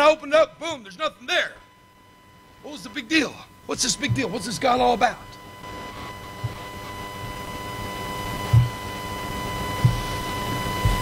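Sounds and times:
electrical whine over hiss: 0.0 - 11.0
short low thumps: 8.5 - 8.8, 9.8 - 10.1.

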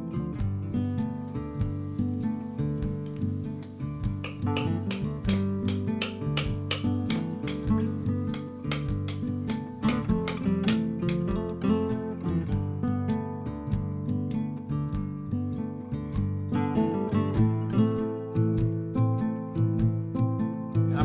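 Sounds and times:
acoustic guitar music: 0.0 - 21.0.

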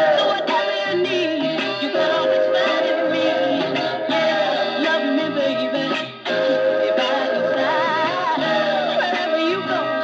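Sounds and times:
soul record with female vocal: 0.0 - 10.0.

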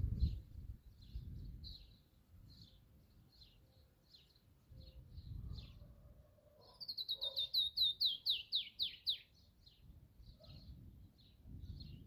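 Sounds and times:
birds chipping: 0.1 - 12.0.

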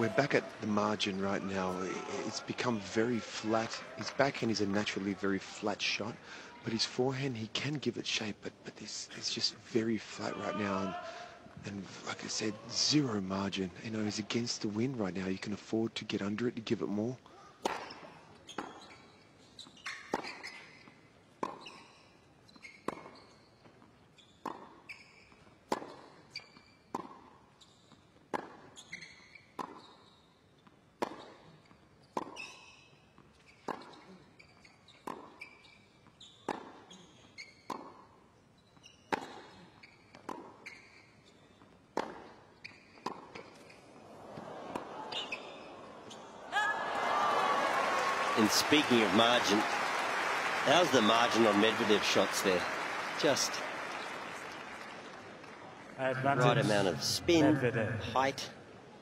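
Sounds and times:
crowd noise: 0.0 - 7.3, 43.9 - 59.0
tennis ball bouncing: 17.6 - 18.9, 21.4 - 22.0, 25.7 - 26.1, 29.6 - 29.9, 31.0 - 32.6, 33.2 - 34.1, 34.9 - 35.5, 36.4 - 38.2, 39.1 - 41.0, 41.6 - 46.2
racket hitting tennis ball: 41.9 - 43.6.

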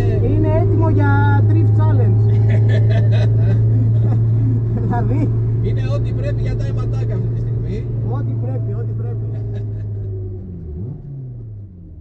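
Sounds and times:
car engine at low revs: 0.0 - 12.0.

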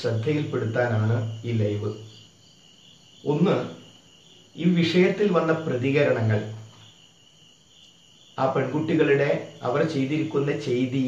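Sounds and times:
man speaking syllable: 0.0 - 2.0, 3.3 - 3.8.

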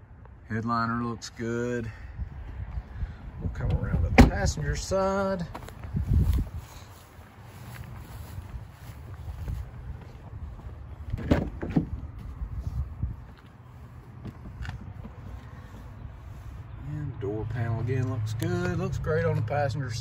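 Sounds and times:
footsteps on grass: 5.3 - 11.1.

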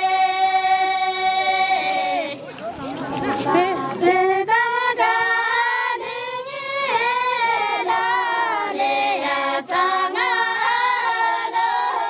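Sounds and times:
women singing in unison: 0.0 - 2.4, 3.2 - 12.0.

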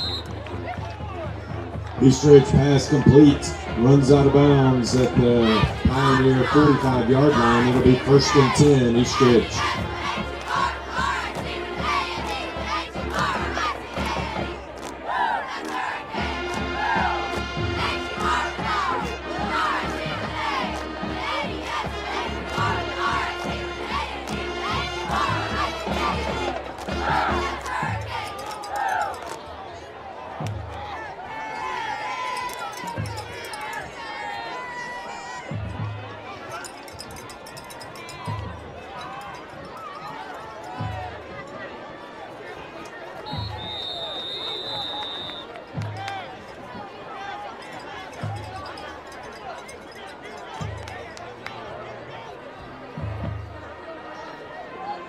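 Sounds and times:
crowd cheering and yelling: 0.0 - 55.0.

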